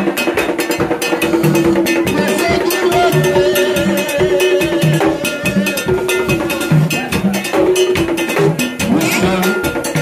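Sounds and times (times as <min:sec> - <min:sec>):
rapid hand drumming: 0:00.0 - 0:10.0
voices singing: 0:01.2 - 0:10.0.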